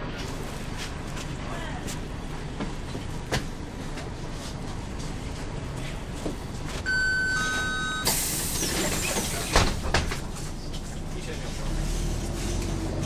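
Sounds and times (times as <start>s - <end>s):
diesel bus engine running: 0.0s - 13.0s
two-tone door warning beep: 6.9s - 8.3s
compressed air hiss: 8.1s - 9.4s.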